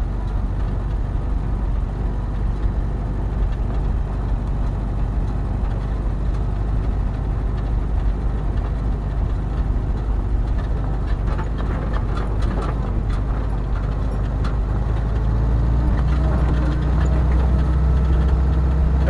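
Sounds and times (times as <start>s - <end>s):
heavy vehicle engine running: 0.0s - 19.0s
light clicks and rattles: 2.6s - 19.0s.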